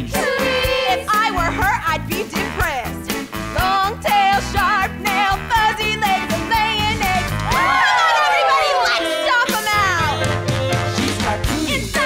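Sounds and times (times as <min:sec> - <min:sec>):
musical number over live band: 0:00.0 - 0:07.8, 0:08.9 - 0:12.0
voices in long falling cry: 0:07.5 - 0:09.2.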